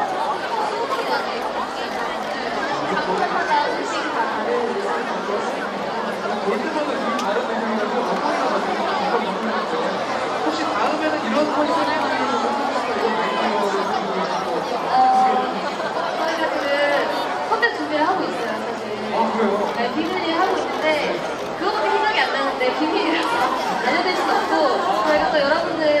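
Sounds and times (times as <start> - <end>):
chatter of many voices: 0.0 - 26.0.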